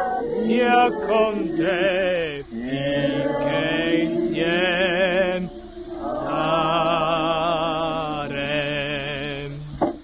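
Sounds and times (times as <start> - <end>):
person singing a hymn: 0.0 - 9.8.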